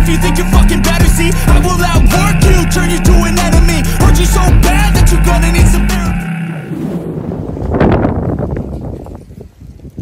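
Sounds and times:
rushing wind-like whoosh: 0:06.6 - 0:08.8.

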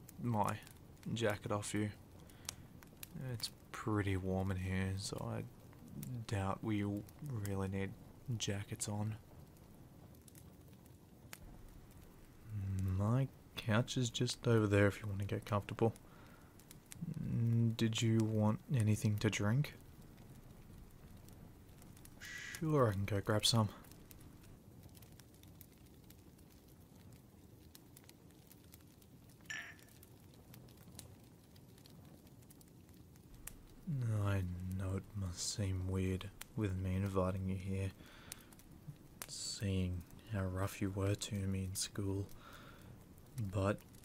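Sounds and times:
fireplace crackling: 0:00.0 - 0:44.0
rain-like patter: 0:00.0 - 0:44.0
soft steady hiss: 0:00.0 - 0:44.0.

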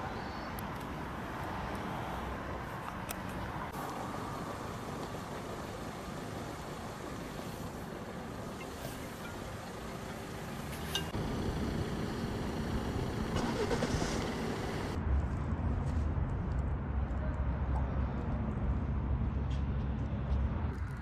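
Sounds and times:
distant road traffic hum: 0:00.0 - 0:21.0.

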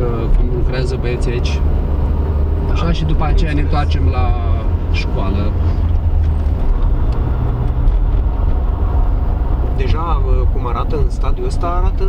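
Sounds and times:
engine rumbling: 0:00.0 - 0:12.0.

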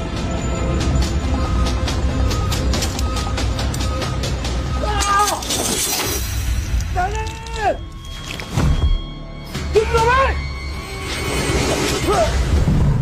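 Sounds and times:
music with percussive beat: 0:00.0 - 0:05.1.

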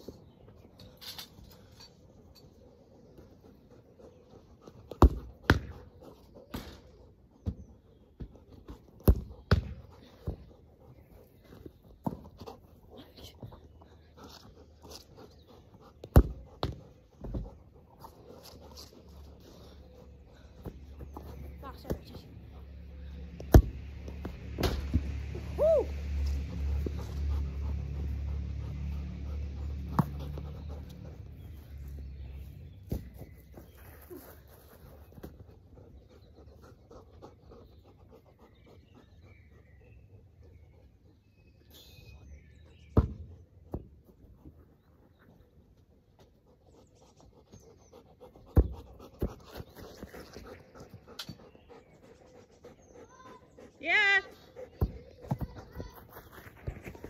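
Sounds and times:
dog panting: 0:02.6 - 0:23.4, 0:26.4 - 0:32.2, 0:35.3 - 0:41.3, 0:45.8 - 0:57.0
football being kicked: 0:09.0 - 0:09.8, 0:43.0 - 0:43.9.

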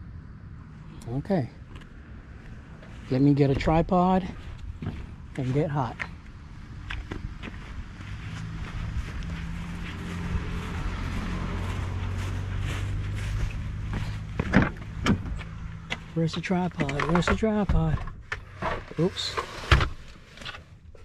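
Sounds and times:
vehicle engine hum: 0:00.0 - 0:21.0.

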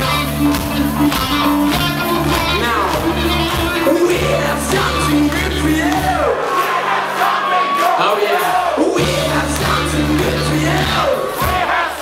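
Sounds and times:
live rock band playing: 0:00.0 - 0:11.8
crowd noise: 0:00.0 - 0:12.0.

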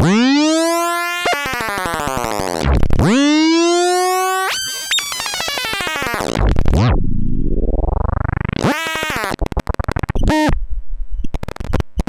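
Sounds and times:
modular synthesizer noise: 0:02.0 - 0:11.8.

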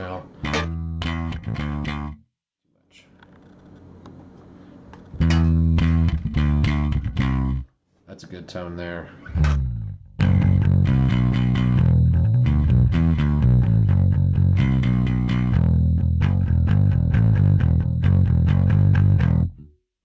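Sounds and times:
electric bass guitar rock riff: 0:00.0 - 0:02.2, 0:05.1 - 0:07.7, 0:09.2 - 0:19.7.

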